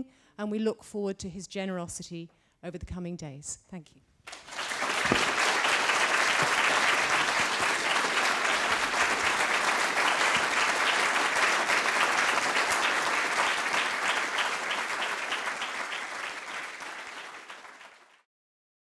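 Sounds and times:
crowd clapping: 0:04.3 - 0:18.3.

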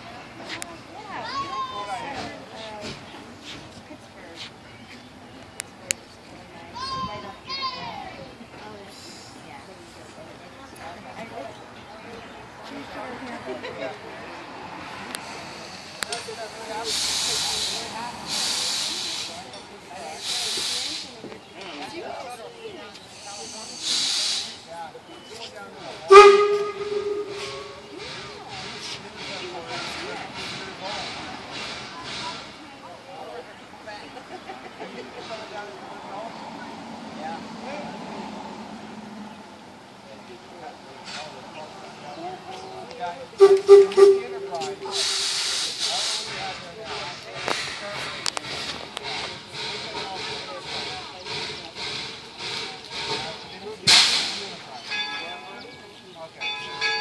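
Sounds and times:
steam locomotive hissing bursts: 0:08.9 - 0:09.6, 0:15.2 - 0:21.3, 0:23.0 - 0:24.8, 0:26.0 - 0:32.6, 0:43.4 - 0:55.0.

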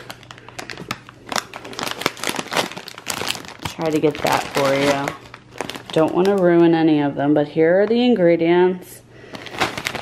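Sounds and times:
chip bag crinkling: 0:00.0 - 0:06.8, 0:09.2 - 0:10.0.

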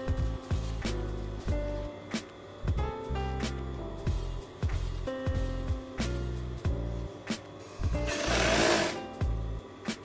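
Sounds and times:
background music: 0:00.0 - 0:10.0
sewing machine stitching: 0:08.1 - 0:09.0.

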